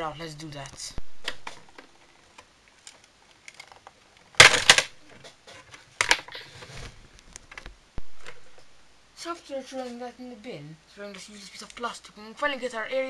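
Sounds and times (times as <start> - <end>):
plastic clattering: 1.2 - 8.7.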